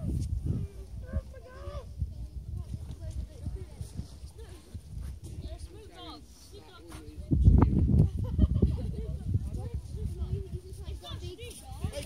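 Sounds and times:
faint voices talking: 0:00.0 - 0:12.0
wind buffeting microphone: 0:00.0 - 0:12.0.

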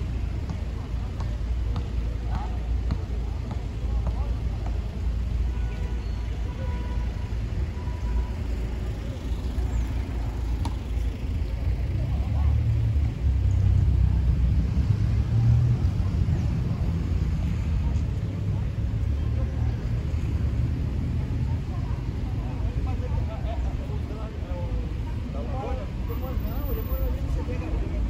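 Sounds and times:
road traffic passing: 0:00.0 - 0:28.0.

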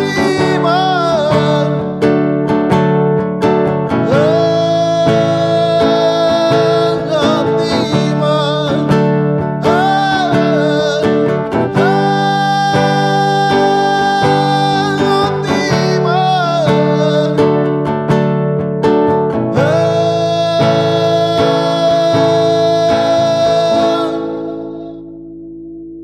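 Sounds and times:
man singing: 0:00.0 - 0:02.2, 0:03.9 - 0:17.8, 0:19.5 - 0:25.1
strummed acoustic guitar: 0:00.0 - 0:25.9.

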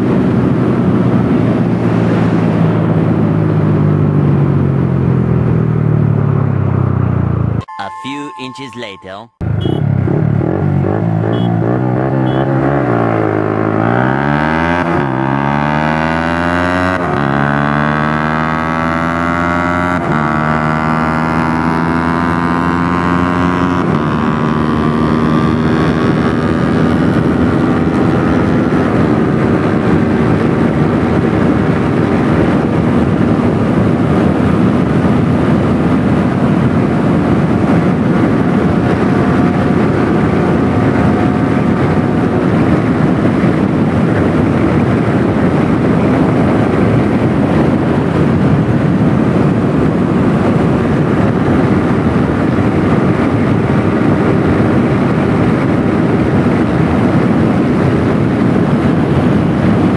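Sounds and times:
wind rush: 0:00.0 - 0:06.8, 0:09.4 - 0:59.9
motorcycle engine accelerating: 0:00.0 - 0:07.6, 0:09.4 - 0:59.9.

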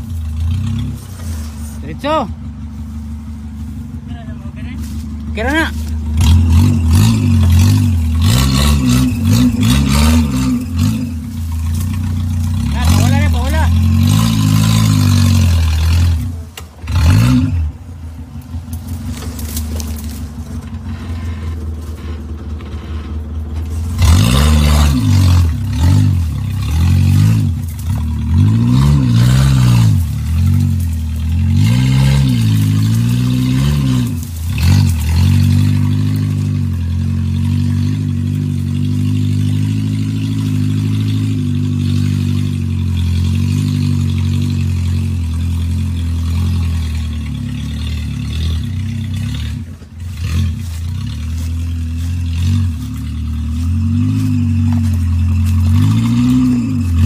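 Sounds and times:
off-road vehicle engine revving: 0:00.0 - 0:57.0
vehicle crawling through brush: 0:00.0 - 0:57.0.

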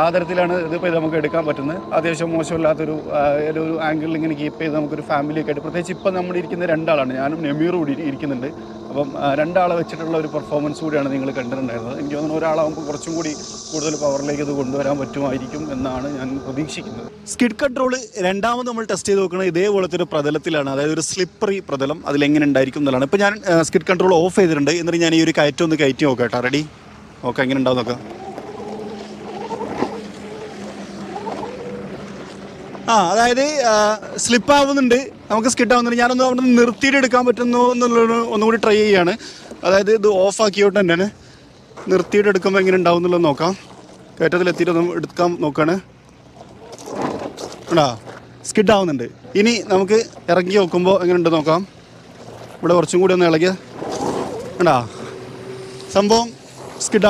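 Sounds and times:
electric scooter motor whining: 0:00.0 - 0:57.0
tyre spinning on loose gravel: 0:46.4 - 0:48.1, 0:53.7 - 0:54.9.

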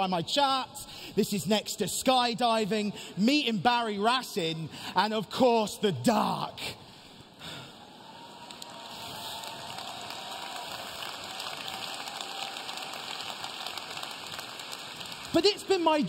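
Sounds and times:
audience applauding: 0:08.1 - 0:16.0.

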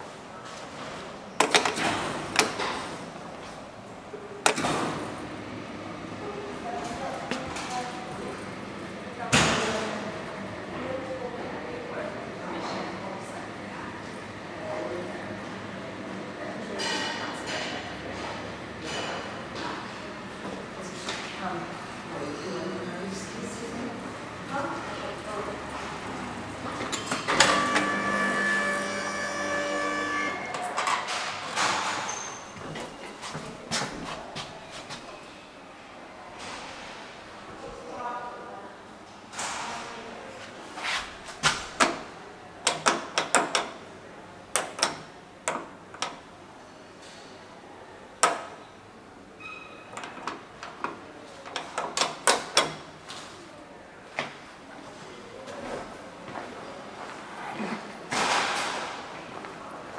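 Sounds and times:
elevator door clicks: 0:01.4 - 0:02.8, 0:04.4 - 0:04.9
elevator door motor whine: 0:26.0 - 0:30.8.

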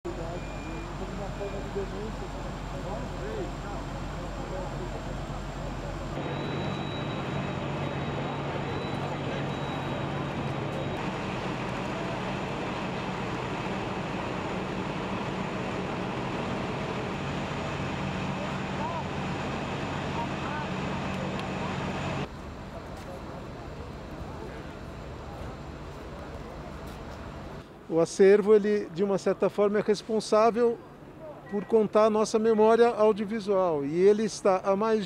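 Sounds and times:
faint high whine: 0:00.1 - 0:27.7
fire truck engine hum: 0:00.1 - 0:27.9.

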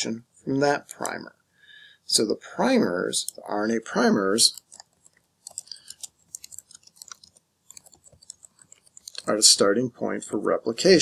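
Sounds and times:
keyboard typing: 0:04.4 - 0:09.4.

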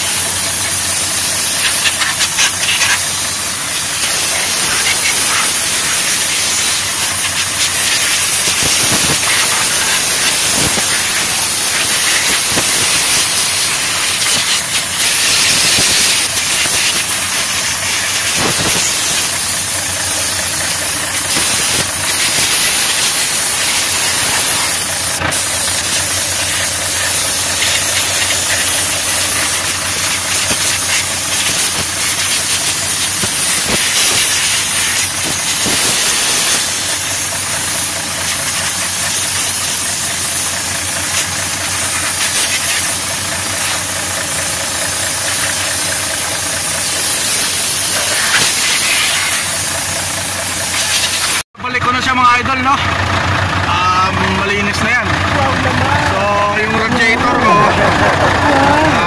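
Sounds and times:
air blow gun hissing: 0:00.0 - 0:51.5
diesel truck engine idling: 0:00.0 - 0:59.0.

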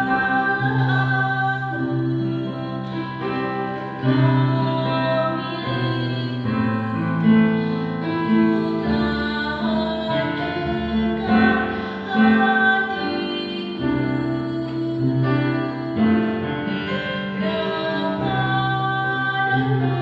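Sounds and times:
instrumental accompaniment: 0:00.0 - 0:20.0
women singing together: 0:00.0 - 0:20.0.

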